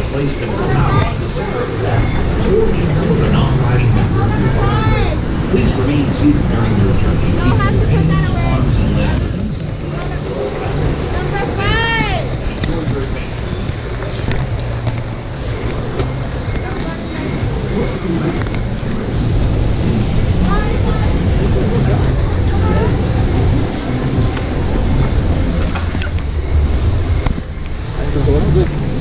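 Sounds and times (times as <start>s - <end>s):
faint indistinct voices: 0.0s - 29.0s
water churning: 0.0s - 29.0s.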